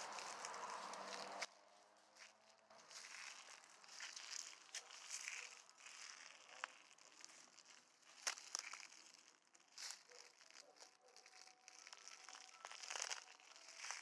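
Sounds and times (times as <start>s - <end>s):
footsteps through dry grass: 0.0s - 14.0s.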